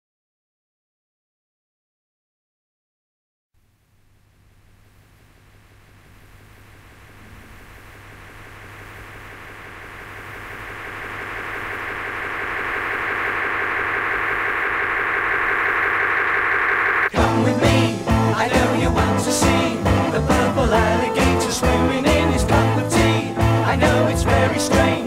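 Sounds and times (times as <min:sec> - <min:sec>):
low hum: 0:03.6 - 0:21.0
mechanical-sounding drone: 0:04.5 - 0:18.1.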